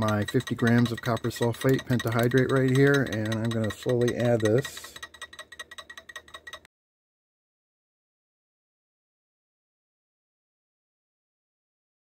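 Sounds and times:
magnetic stirrer ticking: 0.0 - 6.7.

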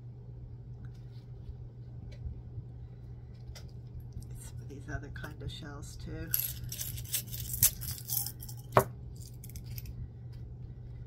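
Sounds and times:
low hum: 0.0 - 11.0
seashells clinking against glass jar: 6.3 - 9.9.

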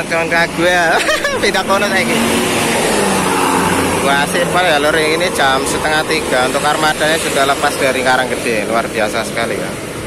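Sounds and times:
bus passing by: 0.0 - 10.0.

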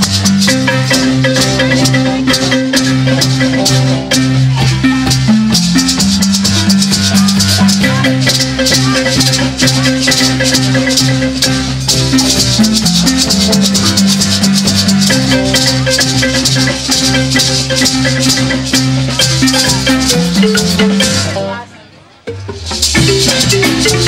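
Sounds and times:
maracas shaking: 0.0 - 21.7, 22.3 - 24.0
cymbals: 0.0 - 21.8, 22.4 - 24.0
bass notes: 0.0 - 24.0
marimbas: 0.0 - 24.0.

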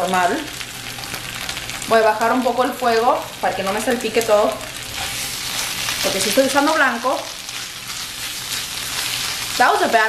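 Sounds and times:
food sizzling in frying pan: 0.0 - 10.0
tongs stirring food: 4.8 - 9.5.

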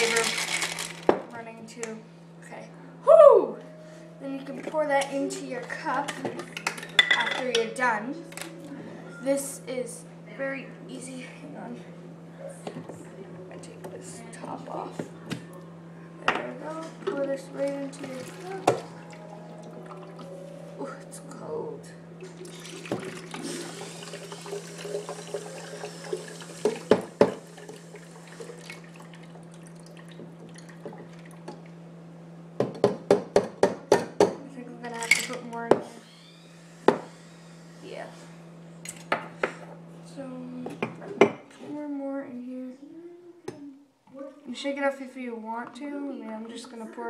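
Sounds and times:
liquid trickling into cup: 22.3 - 31.5.

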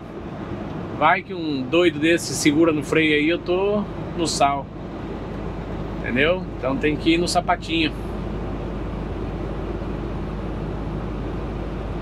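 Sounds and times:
road noise: 0.0 - 12.0
truck engine hum: 0.0 - 12.0.

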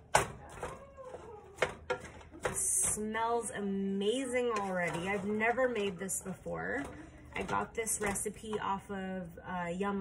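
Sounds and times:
wooden spoon scraping skillet: 1.1 - 8.8.

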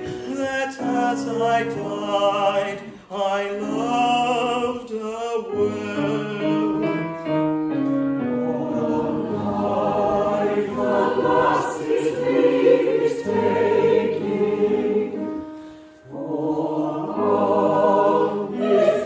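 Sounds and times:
mixed chorus singing: 8.2 - 19.0.

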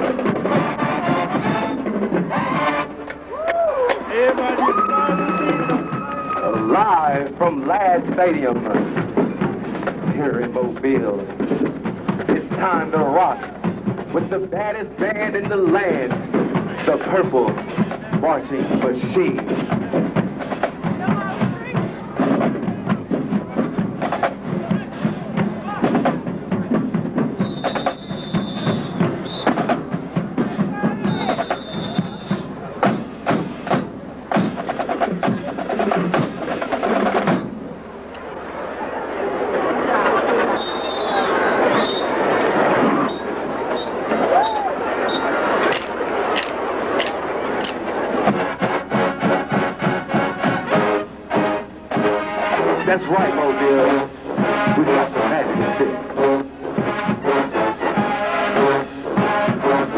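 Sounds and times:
crowd noise: 0.0 - 59.9
drumline playing fast cadence: 0.0 - 59.9
marching band playing: 0.0 - 59.9
high held tones: 27.4 - 34.7.

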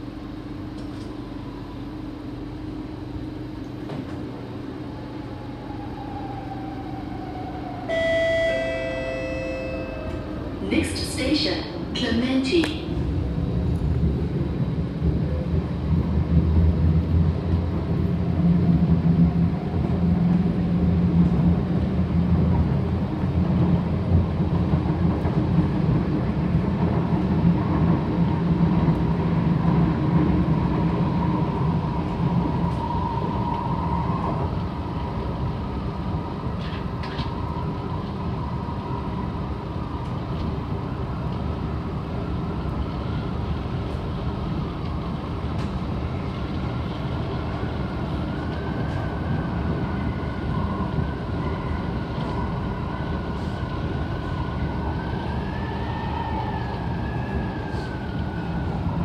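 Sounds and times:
train wheels rumbling on rail: 0.0 - 59.0
thin high whine: 7.9 - 10.4.

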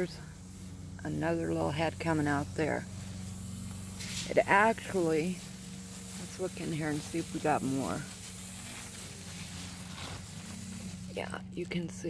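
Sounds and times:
faint hiss: 0.0 - 12.0
low steady hum: 0.0 - 12.0.

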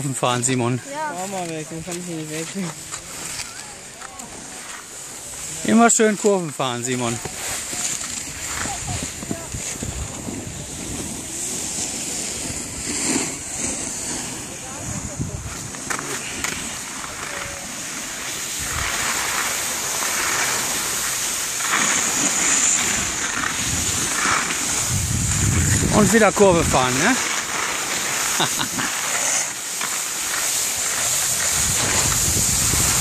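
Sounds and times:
skis scraping over snow: 0.0 - 33.0.

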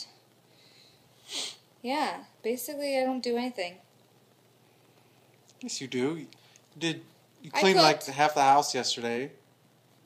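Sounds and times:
person sniffing: 1.2 - 1.6.

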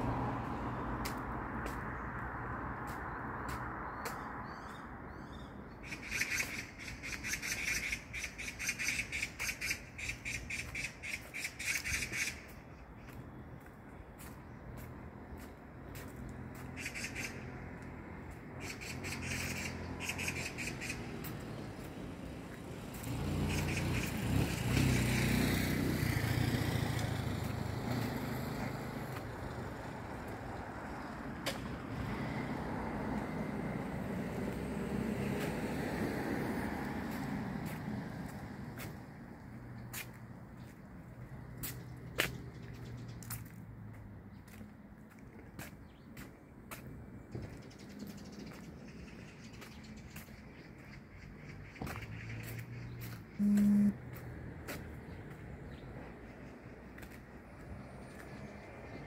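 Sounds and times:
cars passing by: 0.0 - 59.0.

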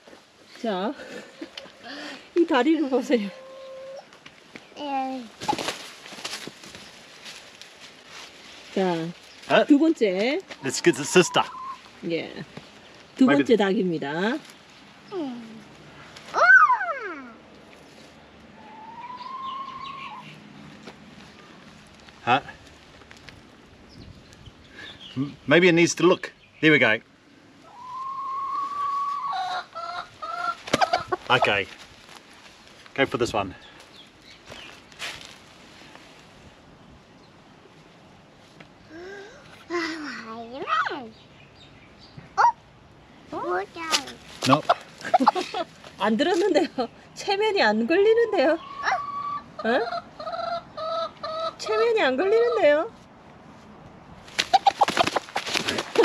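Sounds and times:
hen clucking: 2.8 - 4.1, 10.6 - 11.9, 27.7 - 31.5, 44.4 - 45.6, 48.2 - 52.8, 54.5 - 55.3
hen calling: 2.8 - 4.2, 10.5 - 11.9, 18.5 - 20.4, 27.6 - 31.6, 48.1 - 52.8
hen flapping wings: 5.4 - 6.8, 54.3 - 56.0.

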